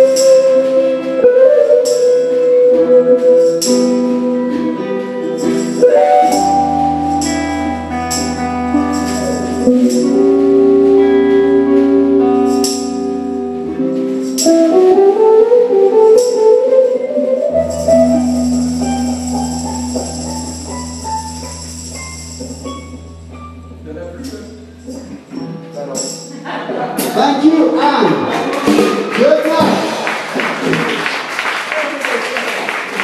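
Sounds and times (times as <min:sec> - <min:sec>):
electric guitar: 0:00.0 - 0:27.1
upright bass: 0:00.0 - 0:29.8.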